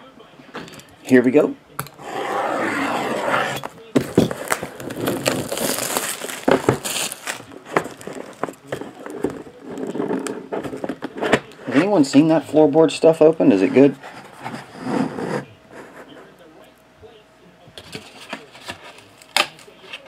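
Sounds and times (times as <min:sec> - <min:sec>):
plastic film tearing and crinkling: 0:02.7 - 0:11.1
blade slicing plastic wrap: 0:04.0 - 0:09.0.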